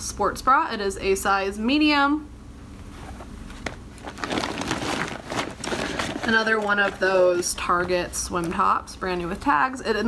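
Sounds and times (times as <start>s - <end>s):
clothing rustling: 2.8s - 8.5s.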